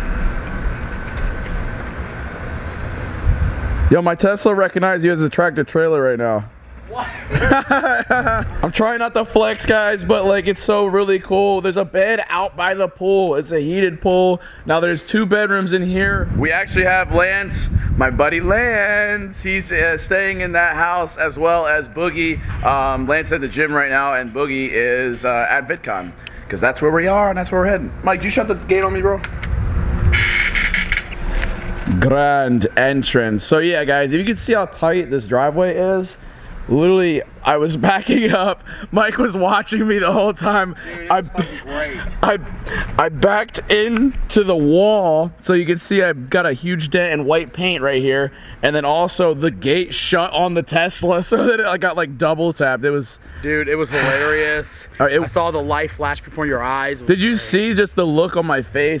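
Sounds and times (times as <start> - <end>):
grinding whine: 0.0 - 4.0, 26.5 - 35.0
wind and handling rumble: 0.0 - 4.0, 15.8 - 24.8, 26.2 - 30.3
faint steady whine: 0.0 - 59.0.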